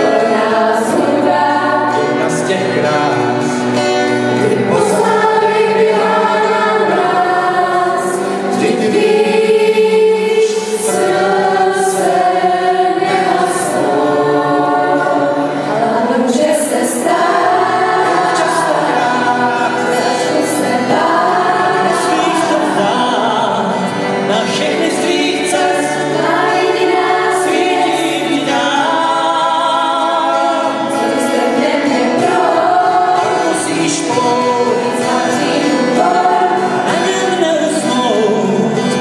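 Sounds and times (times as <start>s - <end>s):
young women singing in chorus: 0.0s - 2.4s, 4.2s - 23.7s, 25.5s - 37.3s
strummed guitars: 0.0s - 39.0s.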